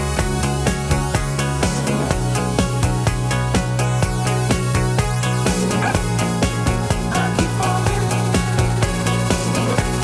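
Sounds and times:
electronic dance music: 0.0 - 10.0
steady kick drum: 0.0 - 10.0.

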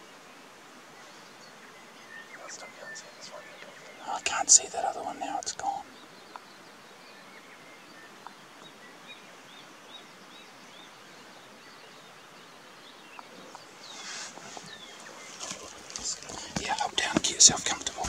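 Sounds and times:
person whispering: 2.4 - 5.9, 15.6 - 18.0
small bird chirping: 9.5 - 18.0.

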